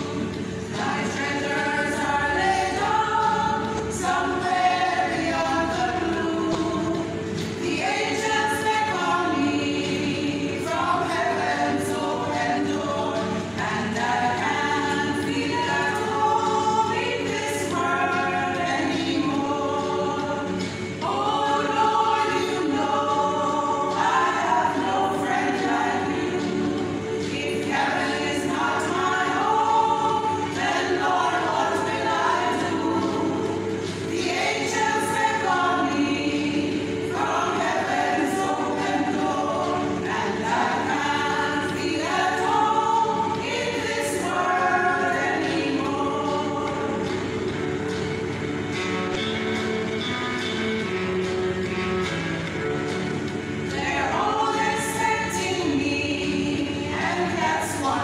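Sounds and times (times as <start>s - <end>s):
women's choir singing: 0.0s - 58.0s.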